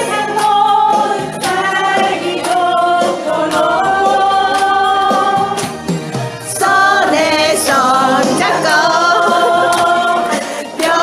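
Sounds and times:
choir singing unaccompanied: 0.0s - 11.0s.

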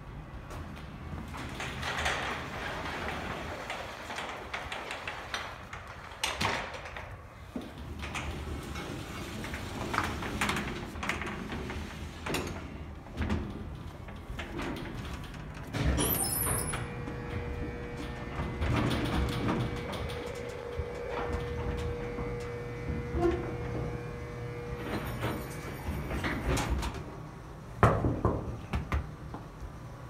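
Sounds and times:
elevator machinery humming whine: 15.7s - 27.8s.

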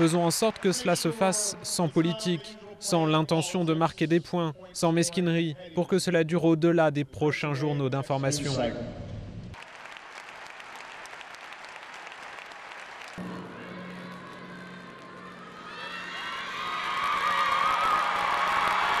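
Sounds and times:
crowd applauding: 0.0s - 1.8s, 9.6s - 19.0s.

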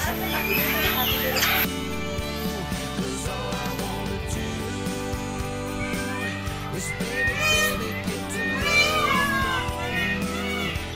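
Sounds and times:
pop song with guitar: 0.0s - 10.9s
peacock call: 5.8s - 10.9s.

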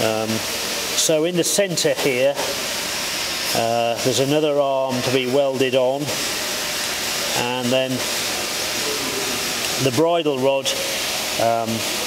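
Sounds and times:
steady broadband hiss: 0.0s - 12.0s.

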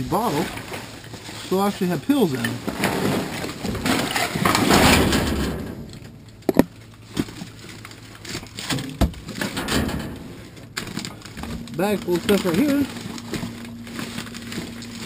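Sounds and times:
plastic bag of pill bottles rattling: 10.8s - 15.0s.

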